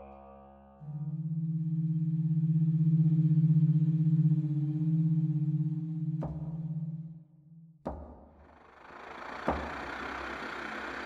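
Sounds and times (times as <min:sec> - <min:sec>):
low pulsing held note: 0:00.0 - 0:07.8.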